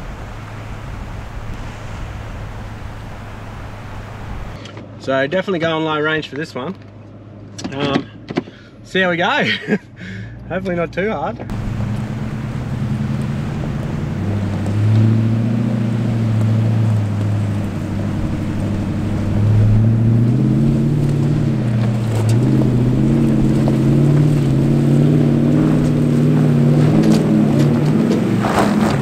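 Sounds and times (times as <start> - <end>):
off-road vehicle engine revving: 10.1 - 29.0.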